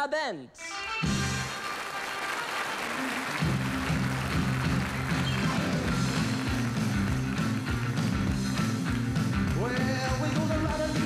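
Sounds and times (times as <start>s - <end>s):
rock and roll band playing: 0.6s - 11.0s
audience applause: 1.0s - 10.9s.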